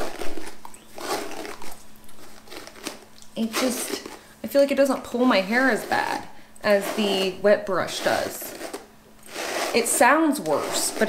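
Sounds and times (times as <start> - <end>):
hairbrush rustling through hair: 0.0 - 4.3, 5.0 - 11.0
sharp brush scratch: 0.0 - 4.3, 5.2 - 11.0.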